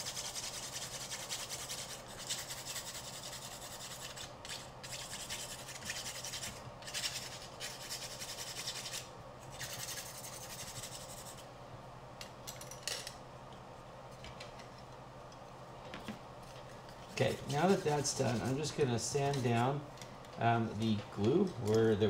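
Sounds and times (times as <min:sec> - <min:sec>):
nail file rasping: 0:00.0 - 0:11.4.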